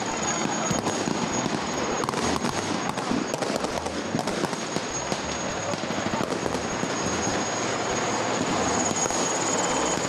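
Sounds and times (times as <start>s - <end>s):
gunfire shots: 0.0s - 7.1s
faint high whine: 0.0s - 10.0s
noisy background: 0.0s - 10.0s.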